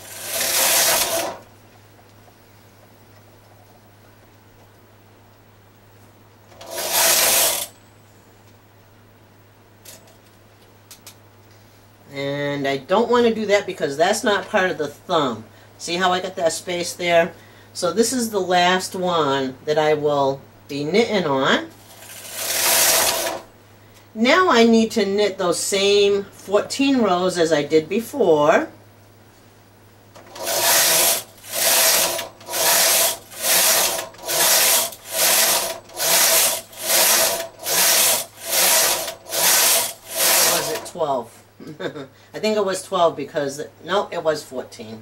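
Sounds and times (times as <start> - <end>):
knitting machine carriage rasping: 0.0 - 1.4, 6.6 - 7.7, 21.8 - 23.5, 30.2 - 40.9.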